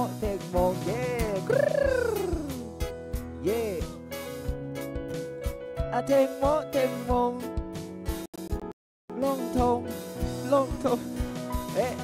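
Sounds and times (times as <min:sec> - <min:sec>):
man singing into a microphone: 0:00.0 - 0:02.7, 0:03.4 - 0:04.1, 0:05.9 - 0:07.5, 0:09.1 - 0:12.0
backing track with drum hits: 0:00.3 - 0:05.6.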